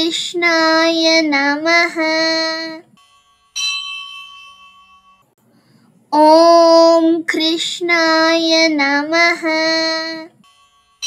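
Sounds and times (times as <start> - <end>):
bell ringing: 3.0 - 5.3, 10.4 - 11.0.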